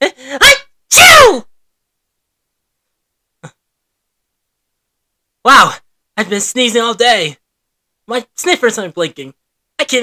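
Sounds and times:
man sneezing: 0:00.0 - 0:01.3.

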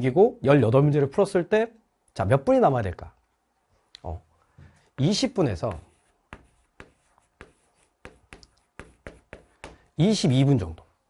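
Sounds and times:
chalk tapping and scratching on chalkboard: 0:05.0 - 0:10.1.

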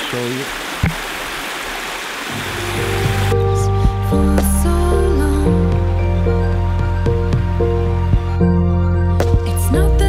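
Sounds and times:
creek rushing over rocks: 0:00.0 - 0:03.4
music with sustained notes: 0:02.3 - 0:10.0.

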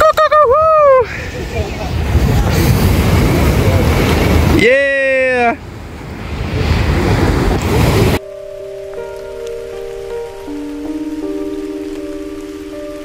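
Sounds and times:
slow music of held chords: 0:08.2 - 0:13.0.

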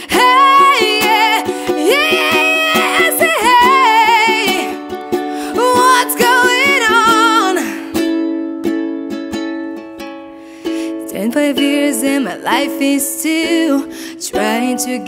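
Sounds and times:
woman singing: 0:00.0 - 0:08.2, 0:10.9 - 0:15.0
strummed ukulele: 0:00.0 - 0:15.0.

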